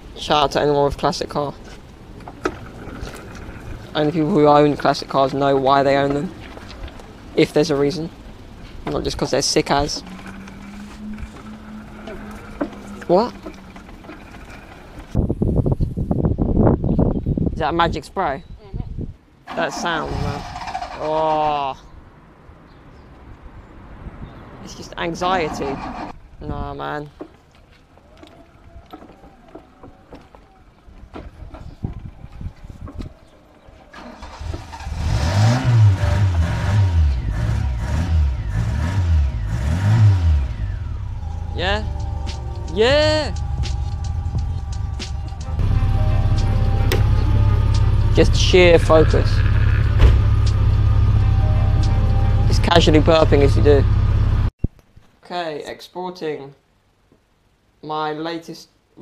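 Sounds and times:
outdoor background hiss: 0.0s - 29.8s, 52.4s - 59.0s
wind buffeting microphone: 1.6s - 19.4s, 21.9s - 34.8s, 40.5s - 45.7s
car engine starting and revving: 8.4s - 15.2s, 19.5s - 21.2s, 25.2s - 26.2s, 33.9s - 54.5s.

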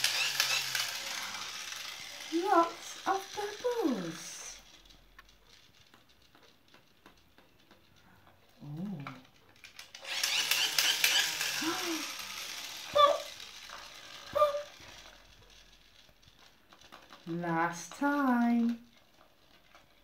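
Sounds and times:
toy bubble gun motor whirring: 0.0s - 20.0s.

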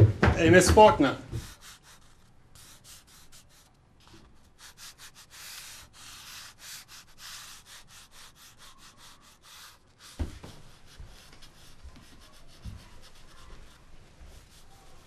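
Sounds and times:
drawing tool scratching on paper: 1.3s - 3.7s, 4.4s - 15.0s.

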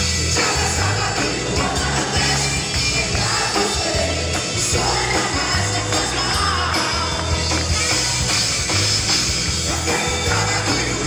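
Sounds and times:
live pop-rock band playing: 0.0s - 11.0s.

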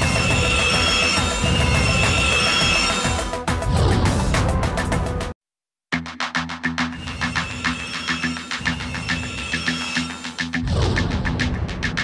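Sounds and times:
grinding disc screeching on metal: 0.0s - 3.5s, 7.0s - 10.6s.

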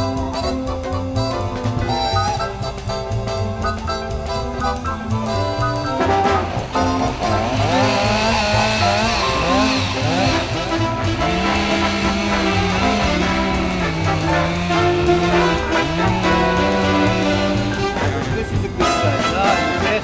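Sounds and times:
jazz music with brass: 0.0s - 20.0s
chainsaw cutting tree trunk: 4.4s - 19.7s.

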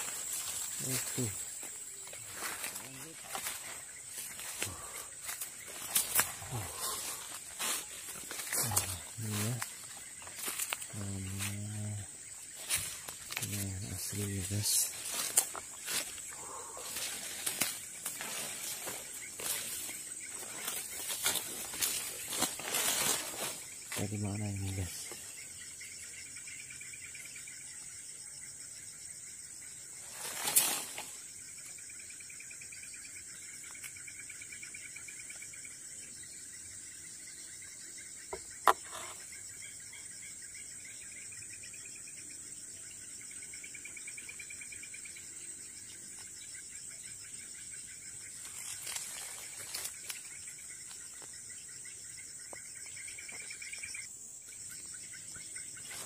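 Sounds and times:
insects high-pitched buzz: 0.0s - 56.0s
low wavering insect trill: 0.0s - 56.0s.

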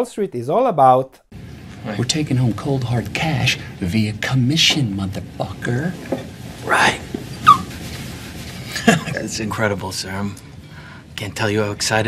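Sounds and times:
laughter: 8.6s - 9.2s.

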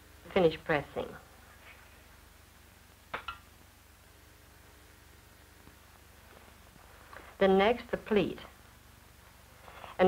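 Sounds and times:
film soundtrack hiss and hum: 0.0s - 10.0s.

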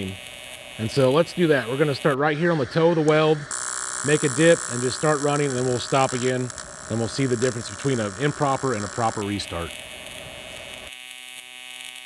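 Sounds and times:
welding arc buzzing hum: 0.0s - 12.0s.

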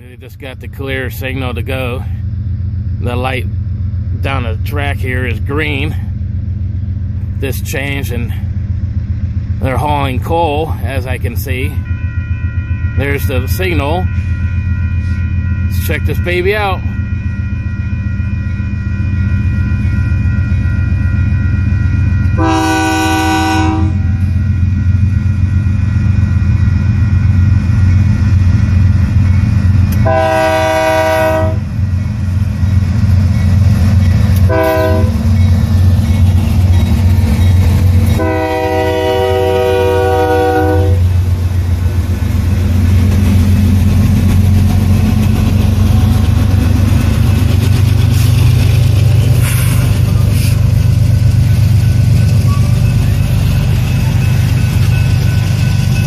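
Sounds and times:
locomotive engines rumbling: 0.0s - 56.0s
locomotive horn: 22.3s - 24.3s, 29.9s - 31.7s, 34.4s - 35.2s, 38.1s - 41.1s.

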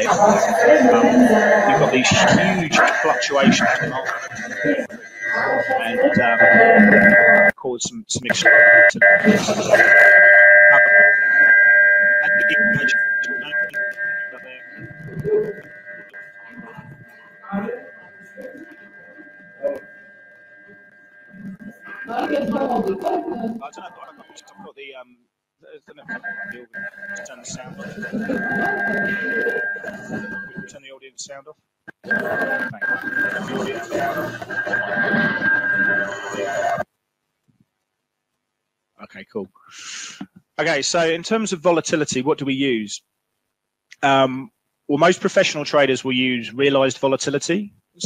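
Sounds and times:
high-pitched whine: 0.0s - 7.6s, 8.2s - 24.8s, 25.9s - 31.0s, 31.9s - 36.8s
indistinct audio over microphone: 0.0s - 37.8s
faint speech over conference link: 25.7s - 31.4s.

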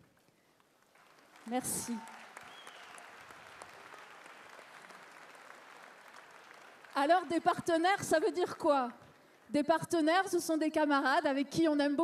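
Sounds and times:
large audience applauding: 0.6s - 8.5s.

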